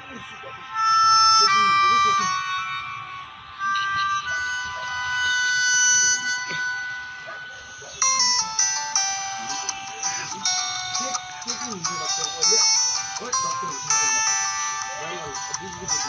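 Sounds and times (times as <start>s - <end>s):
reedy electronic melody: 0.0s - 16.0s.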